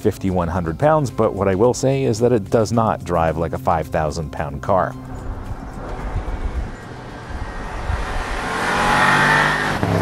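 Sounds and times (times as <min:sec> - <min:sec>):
car engine approaching: 0:04.9 - 0:10.0.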